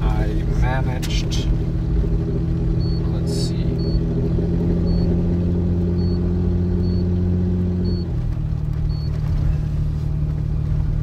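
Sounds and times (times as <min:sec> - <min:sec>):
engine droning under load: 0:00.0 - 0:11.0
tyres on gravel road: 0:00.0 - 0:11.0.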